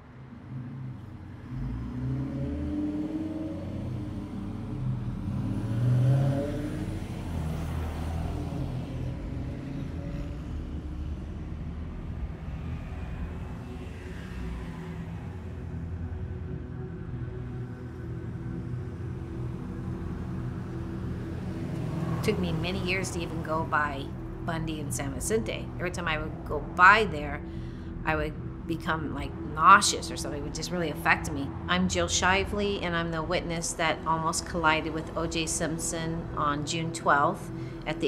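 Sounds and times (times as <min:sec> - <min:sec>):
cars passing: 0:00.0 - 0:38.0
low traffic rumble: 0:00.0 - 0:38.0.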